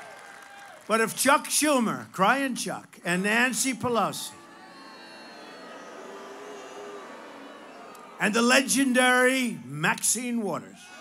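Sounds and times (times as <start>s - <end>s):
crowd murmur: 3.8s - 9.8s.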